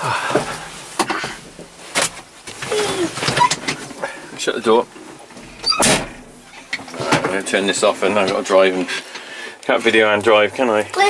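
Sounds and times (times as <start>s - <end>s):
knocks and rattles in tractor cab: 0.3s - 8.5s
cab door handled: 4.9s - 7.4s.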